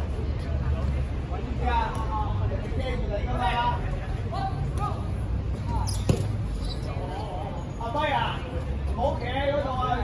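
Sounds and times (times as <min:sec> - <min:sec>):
dodgeball smacking: 0:06.0 - 0:06.4.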